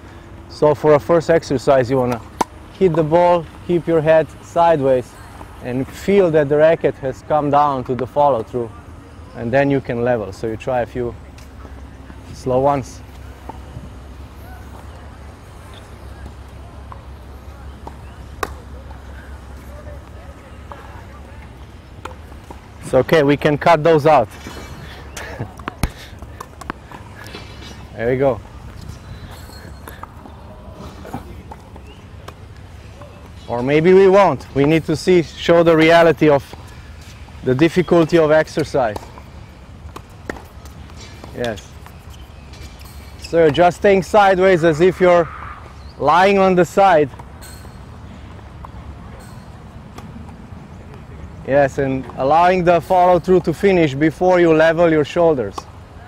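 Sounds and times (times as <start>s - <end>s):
racquet striking tennis ball: 2.1s - 3.0s.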